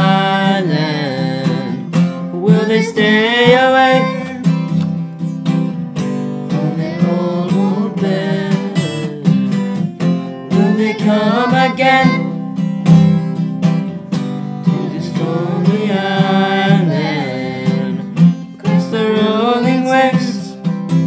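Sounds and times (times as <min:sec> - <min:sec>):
voices singing held notes: 0:00.0 - 0:04.6, 0:06.5 - 0:12.4, 0:14.6 - 0:20.6
acoustic guitar strumming: 0:00.0 - 0:21.0.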